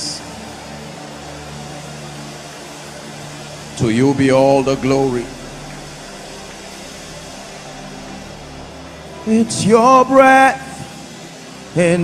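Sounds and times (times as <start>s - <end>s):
soft worship music chord: 0.0s - 12.0s
steady hiss: 0.0s - 12.0s.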